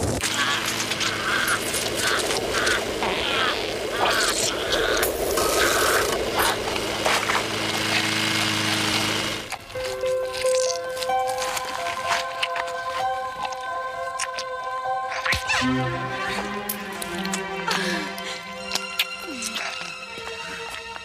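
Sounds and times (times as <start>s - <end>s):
squelching tearing flesh: 0.2s - 15.6s
film score long held notes: 0.2s - 21.0s
low steady drone: 0.2s - 21.0s.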